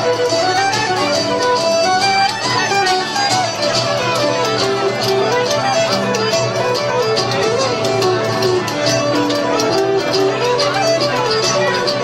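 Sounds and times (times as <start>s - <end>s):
folk dance band playing: 0.0s - 12.0s.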